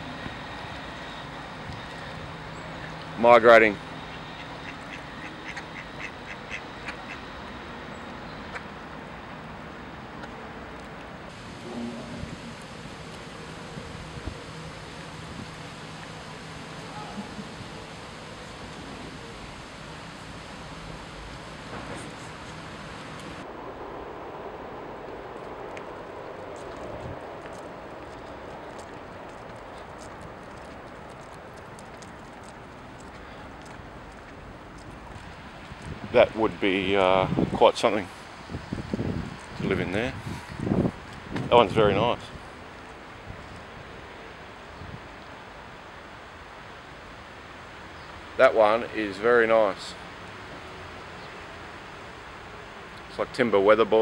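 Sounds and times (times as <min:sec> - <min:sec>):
outdoor background noise: 0:00.0 - 0:54.0
ducks quacking: 0:01.9 - 0:07.4.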